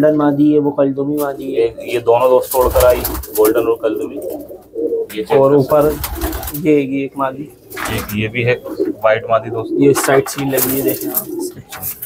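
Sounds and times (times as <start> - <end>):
pigeons cooing: 1.2 - 12.0.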